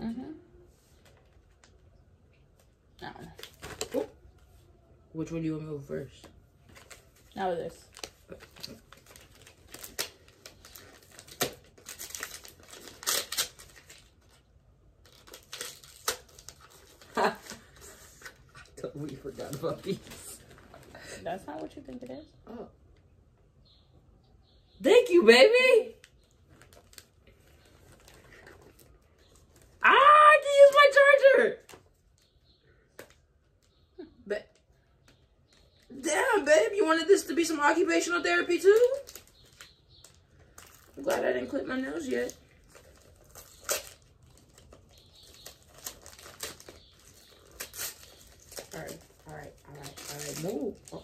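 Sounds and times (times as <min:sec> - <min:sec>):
gift packaging crinkling: 0:06.1 - 0:22.4, 0:25.0 - 0:33.8, 0:34.6 - 0:51.0
person exclaiming: 0:29.8 - 0:31.6.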